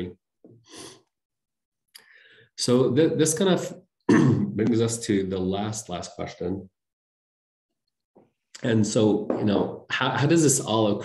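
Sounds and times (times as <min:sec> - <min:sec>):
man breathing: 0:02.0 - 0:02.6.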